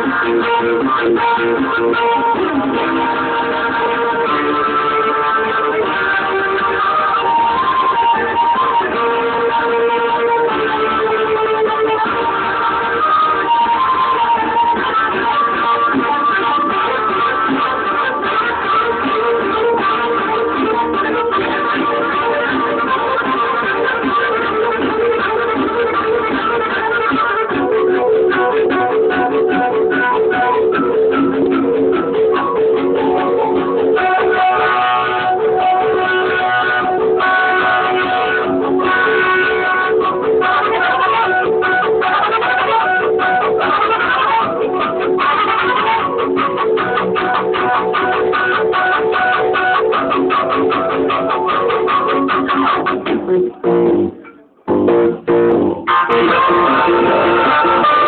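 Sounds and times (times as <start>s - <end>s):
guitar-led instrumental ensemble: 0.0s - 58.0s.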